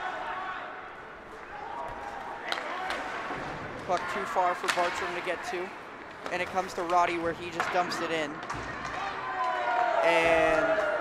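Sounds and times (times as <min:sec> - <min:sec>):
hockey stick hitting puck: 0:02.5 - 0:05.5, 0:06.1 - 0:09.9.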